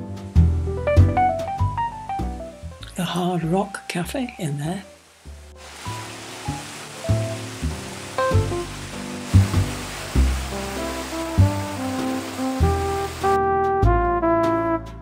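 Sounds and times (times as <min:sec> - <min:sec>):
background music: 0:00.0 - 0:15.0
fountain water splashing: 0:04.0 - 0:13.4.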